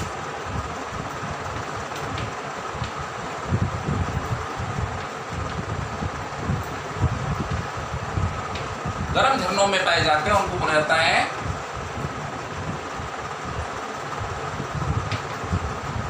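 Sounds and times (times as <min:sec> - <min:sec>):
fan-like background hum: 0:00.0 - 0:16.0.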